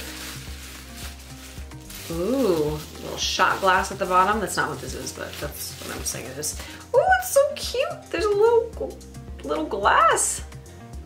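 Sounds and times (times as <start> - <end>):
bubble wrap crinkling: 0.0 - 7.6.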